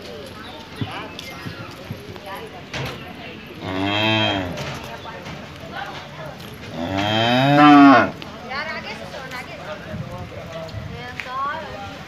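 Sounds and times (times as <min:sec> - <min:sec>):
cow mooing: 0:03.6 - 0:04.6, 0:06.7 - 0:08.2.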